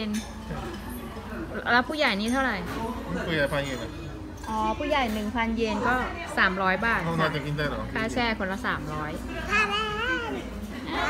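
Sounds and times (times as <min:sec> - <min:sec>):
toddler's wavering vocal sound: 0:09.3 - 0:10.6.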